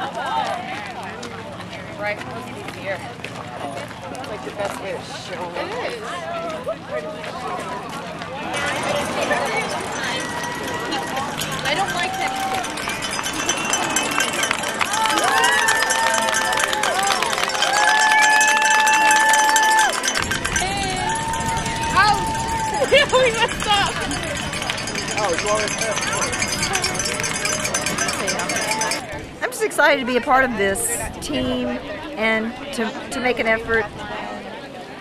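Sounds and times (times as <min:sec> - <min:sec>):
low outdoor rumble: 0:08.1 - 0:18.4, 0:19.9 - 0:29.4.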